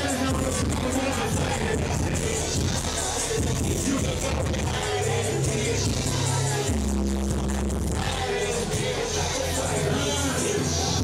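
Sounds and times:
loud hip-hop music: 0.0 - 11.0.

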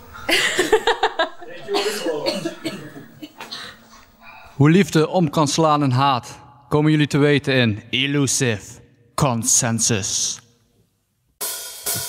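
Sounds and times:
women laughing and talking: 0.2 - 3.4.

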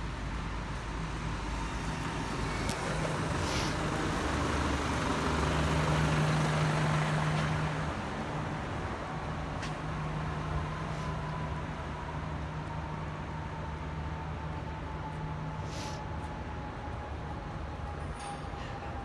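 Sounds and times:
traffic noise: 0.0 - 19.0
truck engine rumble: 0.0 - 19.0
brief hiss: 3.4 - 3.8, 15.6 - 16.0.

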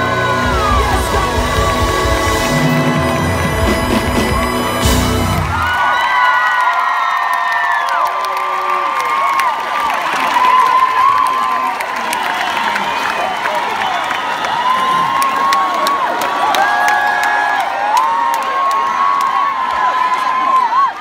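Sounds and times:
live pop band playing: 0.0 - 5.9
crowd screaming and cheering: 0.0 - 21.0.

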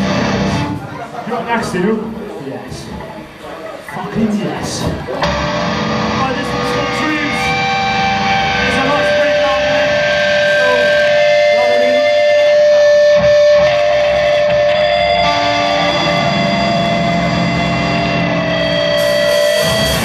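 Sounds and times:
amplified electric guitars ringing: 0.0 - 0.9, 5.2 - 20.0.

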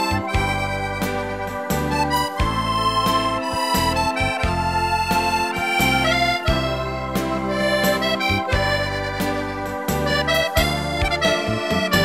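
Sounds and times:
accordion playing a slow waltz: 0.0 - 12.0.

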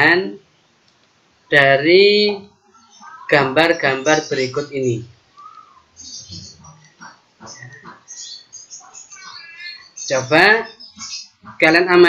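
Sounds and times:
high chirps: 2.4 - 11.7
faint animal calls: 2.5 - 11.7.

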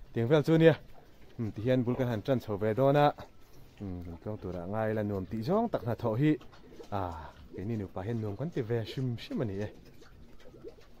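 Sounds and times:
man speaking: 0.1 - 0.8, 1.4 - 9.8
pigeons cooing: 0.7 - 11.0.

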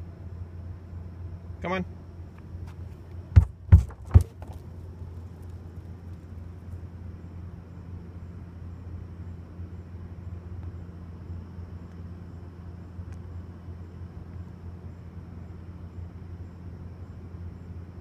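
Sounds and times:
low background rumble: 0.0 - 18.0
knocks on plastic garbage can: 3.3 - 4.6.

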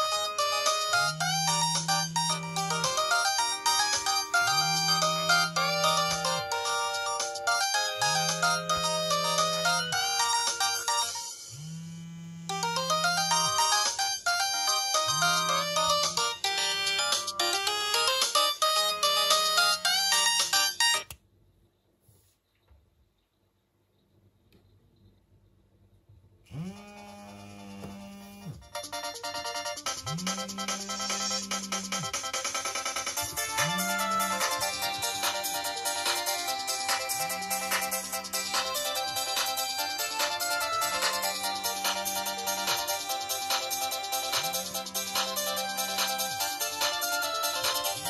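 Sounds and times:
polyphonic phone ringtone: 0.0 - 11.5, 12.5 - 21.0, 28.7 - 48.0
pulsing low hum: 0.8 - 6.6, 11.5 - 13.8, 30.0 - 32.2.

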